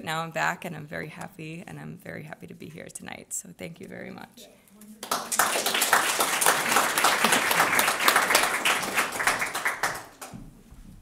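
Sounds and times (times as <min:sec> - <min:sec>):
audience applauding: 0:05.0 - 0:10.4.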